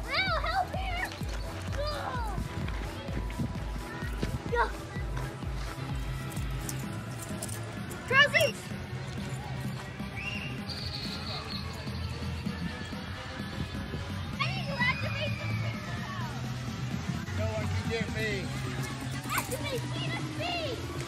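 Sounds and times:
background music with bass beat: 0.0 - 21.0.

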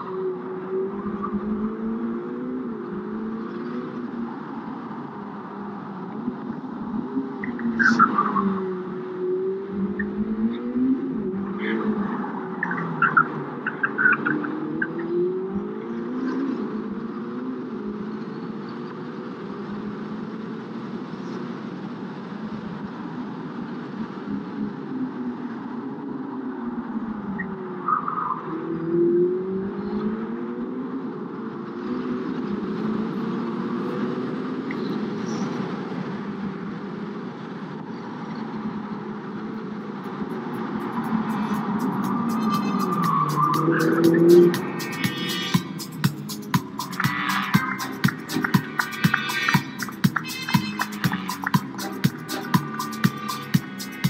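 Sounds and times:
sports car engine accelerating: 39.4 - 54.0.

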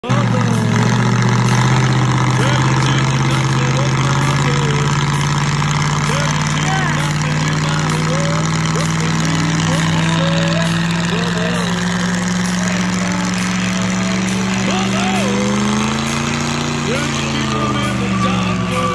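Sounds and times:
car engine droning at high revs: 0.0 - 18.9
tyre squealing: 0.0 - 18.9.

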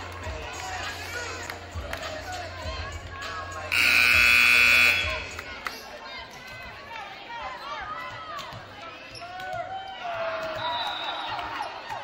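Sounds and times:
scoreboard buzzer: 3.7 - 5.4.

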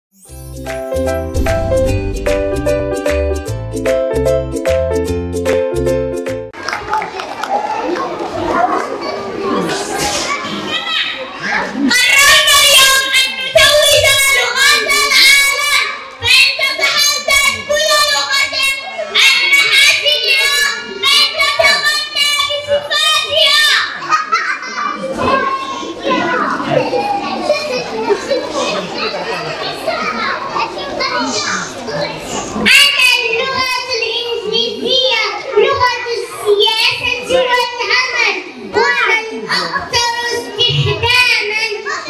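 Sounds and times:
children chattering and calling out: 6.6 - 42.0
child speaking: 7.9 - 42.0.

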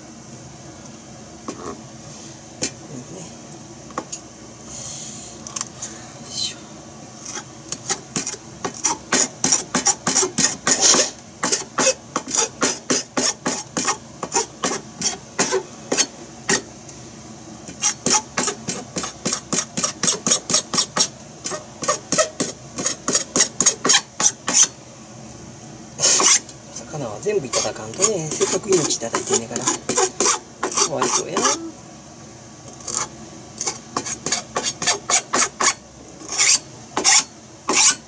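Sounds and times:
knife scraping fish: 7.2 - 16.7, 17.7 - 24.7, 26.0 - 26.4, 27.5 - 31.6, 32.8 - 38.0.

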